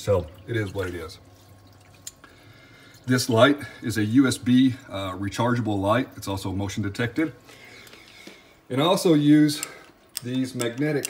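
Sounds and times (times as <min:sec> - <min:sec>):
water trickling and dripping: 0:00.0 - 0:08.3.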